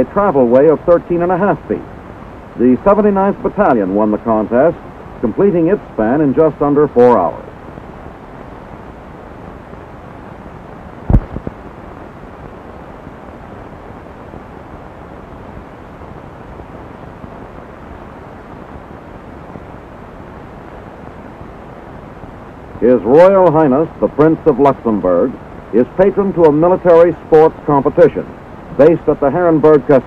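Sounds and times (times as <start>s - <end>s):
steady background noise: 0.0s - 30.0s
sharp thump: 11.1s - 11.5s.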